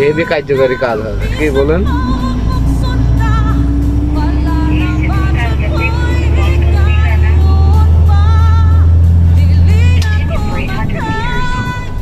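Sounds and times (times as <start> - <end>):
heavy vehicle engine drone: 0.0 - 12.0
road noise: 0.0 - 12.0
song with singing voice: 0.0 - 12.0
rising engine tone: 1.2 - 12.0.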